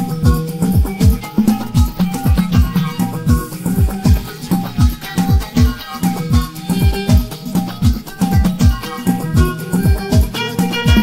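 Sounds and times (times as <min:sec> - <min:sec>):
shaker-like rattle: 0:00.0 - 0:11.0
sustained keyboard or bass: 0:00.0 - 0:11.0.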